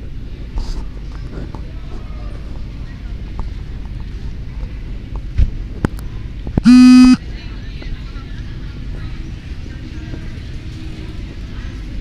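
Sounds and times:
car horn honk: 6.6s - 7.2s.

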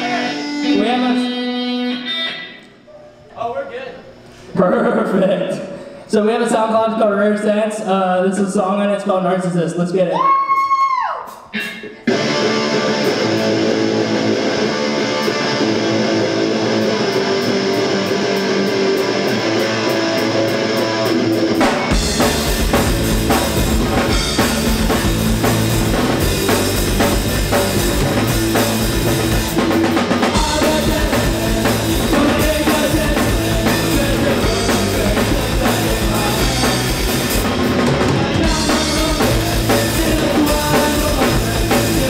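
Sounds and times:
punk rock band playing: 0.0s - 2.6s, 11.3s - 42.0s
electric guitars: 0.0s - 3.2s, 11.4s - 42.0s.

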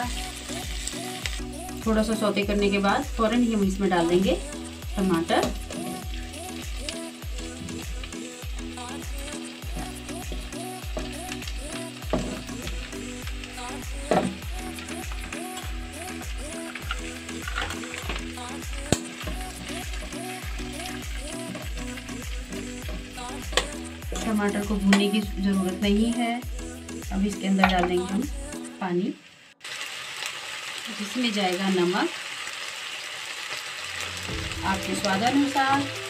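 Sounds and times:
background music with steady beat: 0.0s - 28.9s, 34.1s - 36.0s
tomatoes sizzling in oil: 0.0s - 36.0s.

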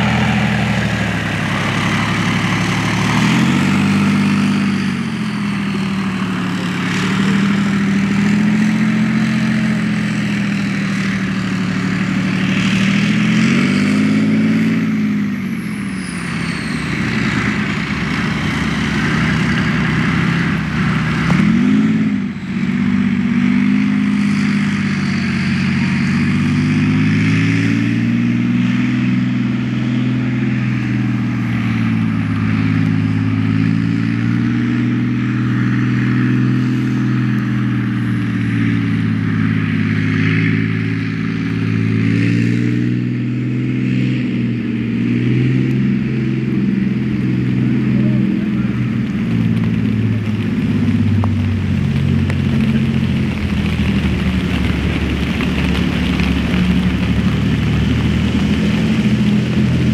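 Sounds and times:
tank diesel engine revving: 0.0s - 59.9s.

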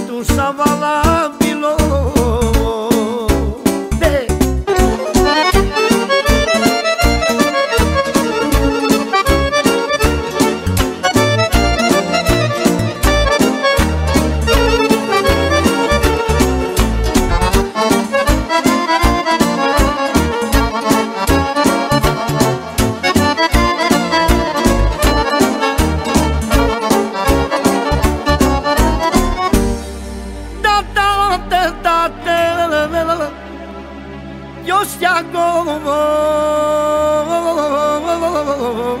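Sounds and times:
quick beat and bass: 0.3s - 32.1s
accordion fast melodic runs: 4.8s - 30.6s.

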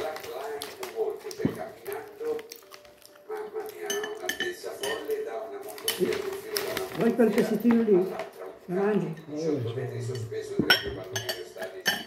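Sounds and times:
cutlery clinking on plate: 3.8s - 5.2s, 10.1s - 12.0s.

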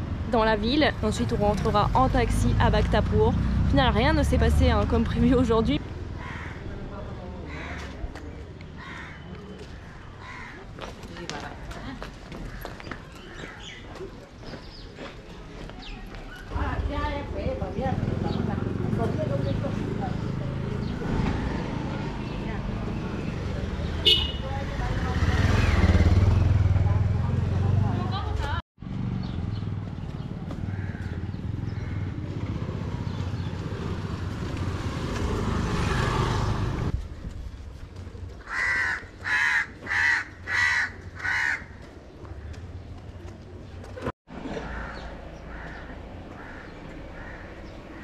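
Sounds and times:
motorcycle passing: 0.0s - 7.4s, 16.5s - 37.0s
low street background: 0.0s - 48.0s
crow cawing: 6.1s - 6.8s, 7.4s - 8.0s, 8.8s - 10.8s, 12.4s - 13.8s, 30.6s - 32.2s, 38.4s - 41.8s, 44.5s - 48.0s.

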